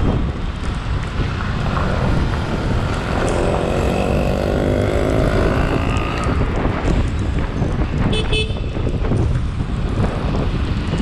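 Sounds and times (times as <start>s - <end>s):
road rumble: 0.0s - 11.0s
wind buffeting microphone: 0.0s - 11.0s.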